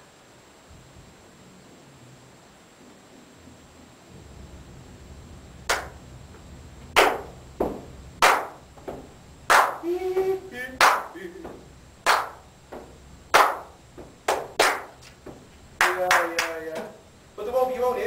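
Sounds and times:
person clapping hands: 0:05.7 - 0:06.0, 0:07.0 - 0:07.3, 0:08.2 - 0:16.9
person humming: 0:09.8 - 0:11.6.

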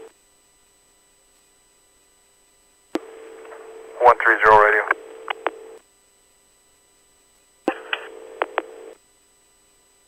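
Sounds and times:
radio hiss with steady tone: 0:00.0 - 0:10.0
radio click: 0:03.0 - 0:05.6, 0:07.7 - 0:08.8.

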